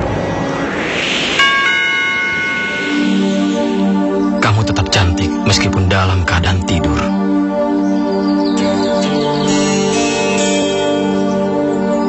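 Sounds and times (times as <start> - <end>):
low music bed: 0.0 - 12.0
bell-like chime: 1.4 - 3.9, 9.4 - 11.5.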